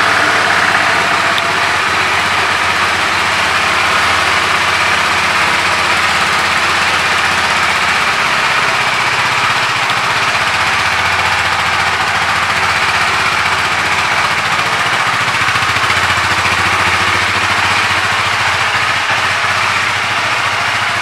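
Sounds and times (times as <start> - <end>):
motorcycle engine idling: 0.0 - 21.0.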